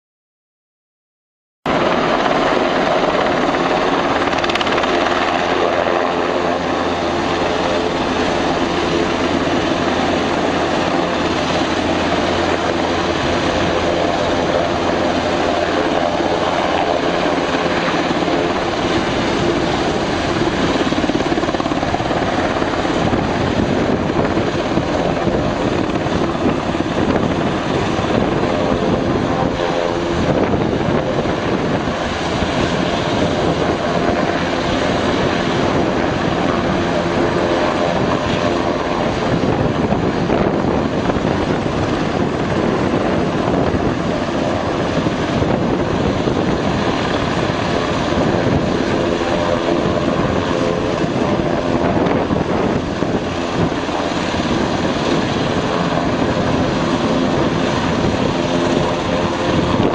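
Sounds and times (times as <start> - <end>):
helicopter hovering: 1.7 - 59.9.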